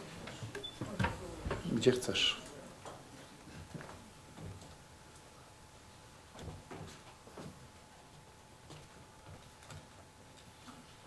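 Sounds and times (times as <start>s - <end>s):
footsteps on wooden floor: 0.0s - 1.8s
walking cane tapping on wood: 6.3s - 11.0s.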